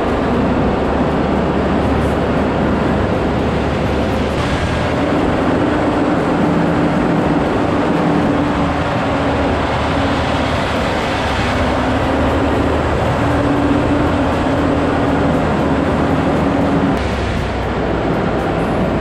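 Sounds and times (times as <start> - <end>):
diesel truck engine running: 0.0 - 19.0.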